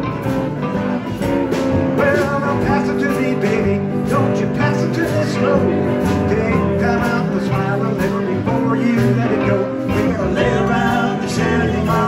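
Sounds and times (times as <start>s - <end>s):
drums: 0.0s - 12.0s
electric guitar: 0.0s - 12.0s
upright bass: 0.0s - 12.0s.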